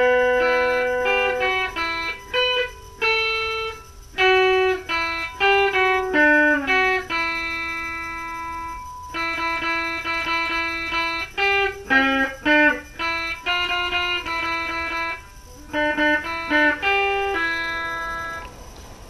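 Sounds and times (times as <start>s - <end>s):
clean electric guitar melody: 0.0s - 18.6s.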